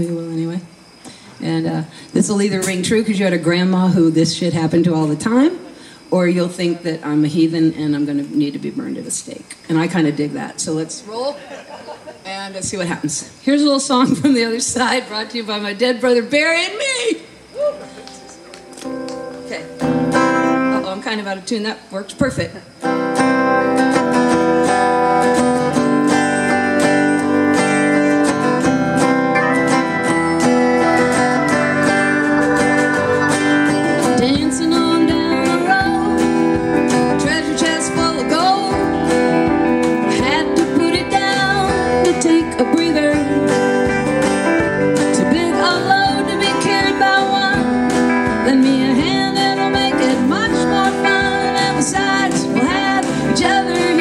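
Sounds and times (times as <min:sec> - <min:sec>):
live country-rock band: 0:17.6 - 0:21.0, 0:22.8 - 0:54.0.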